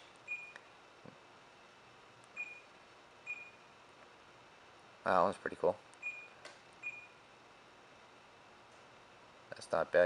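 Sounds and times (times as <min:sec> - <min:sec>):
short high touchscreen beeps: 0:00.3 - 0:00.6, 0:02.4 - 0:02.7, 0:03.3 - 0:03.6, 0:06.0 - 0:07.2.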